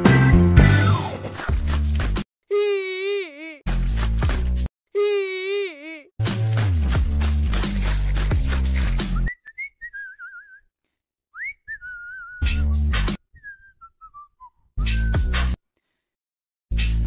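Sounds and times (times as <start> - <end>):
bass-heavy music bursts: 0.0 - 2.2, 6.2 - 9.2
person whistling a tune: 9.1 - 10.7, 11.4 - 15.5.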